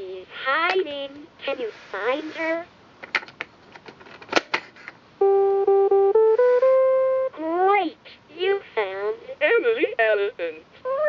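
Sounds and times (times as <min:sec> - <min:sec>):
electronic beeping tune: 0:05.2 - 0:07.4.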